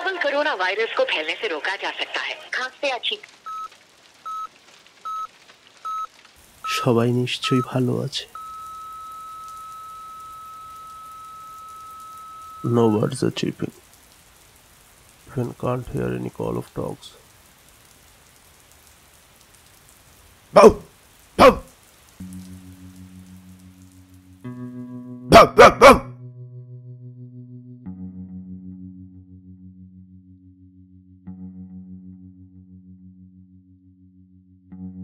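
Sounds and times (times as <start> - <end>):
faint hiss: 0.0 - 24.5
low held musical chord: 22.2 - 25.4.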